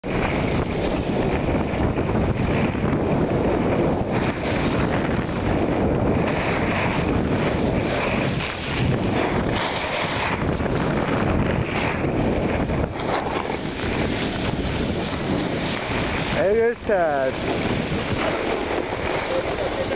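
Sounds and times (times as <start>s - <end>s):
wind rushing over microphone: 0.0s - 19.9s
skis sliding on snow: 0.1s - 19.9s.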